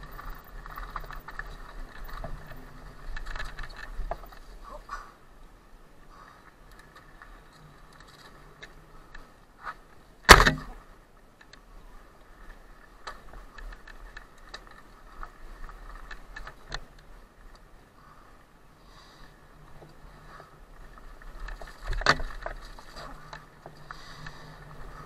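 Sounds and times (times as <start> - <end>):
bike rattling and ticking: 0.0 - 4.6, 10.3 - 17.8, 19.1 - 25.0
bike knock on bump: 10.3 - 10.8.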